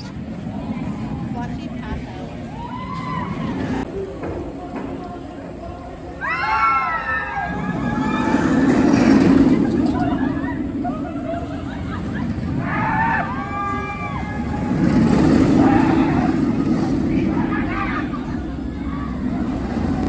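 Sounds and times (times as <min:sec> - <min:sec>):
roller coaster train rumbling on track: 0:00.0 - 0:20.0
people's voices and shouts: 0:00.5 - 0:20.0.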